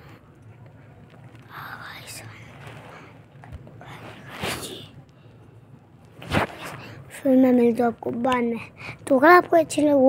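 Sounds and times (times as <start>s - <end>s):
faint low hum: 0.0s - 10.0s
child whispering: 1.4s - 3.2s, 3.8s - 5.0s.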